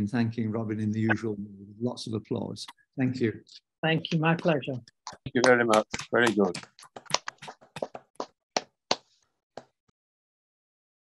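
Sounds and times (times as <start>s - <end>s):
hand claps: 4.4s - 9.7s.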